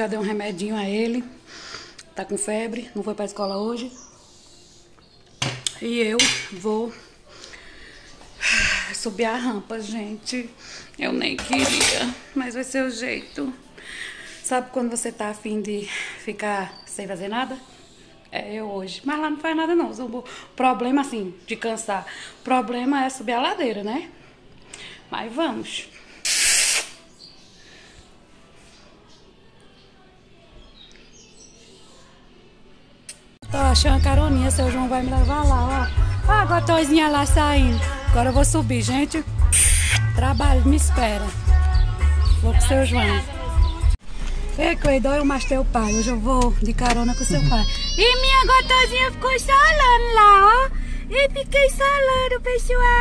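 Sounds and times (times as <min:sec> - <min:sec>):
loud hiss: 0:26.2 - 0:27.0, 0:39.5 - 0:40.0.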